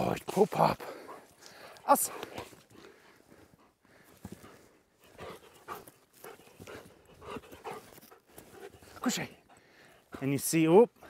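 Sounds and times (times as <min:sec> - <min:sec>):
dog panting: 0:00.8 - 0:11.0.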